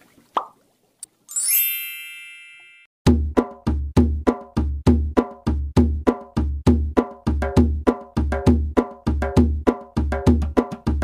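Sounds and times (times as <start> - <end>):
rising shimmering chime: 1.3 - 2.9
percussive music with heavy beat: 3.1 - 11.0.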